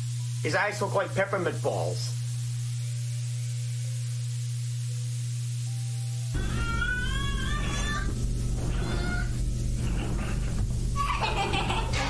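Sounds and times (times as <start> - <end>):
wavering wail: 6.3 - 9.5
low drone: 6.3 - 12.0.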